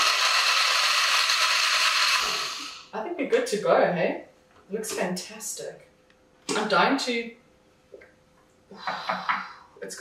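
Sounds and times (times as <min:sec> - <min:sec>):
blender whirring with ice: 0:00.0 - 0:02.9.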